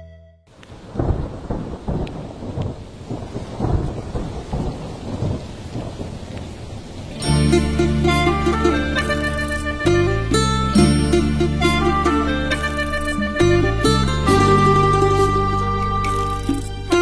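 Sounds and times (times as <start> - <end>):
steady rain: 0.5 - 17.0
rolling thunder: 0.7 - 7.2
plucked string music: 7.1 - 17.0.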